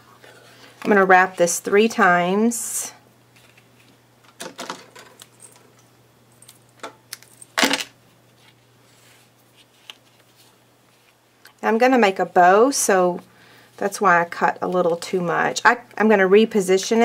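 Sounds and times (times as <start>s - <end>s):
twine rustling around card: 8.3s - 11.2s.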